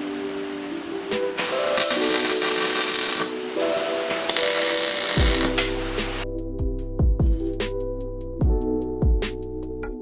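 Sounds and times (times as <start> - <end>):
welder arc crackling: 0.0 - 6.2
electronic music with heavy bass: 4.3 - 10.0.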